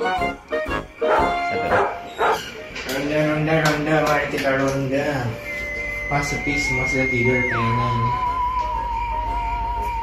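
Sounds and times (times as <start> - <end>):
background music: 0.0 - 10.0
dog barking: 1.0 - 2.5.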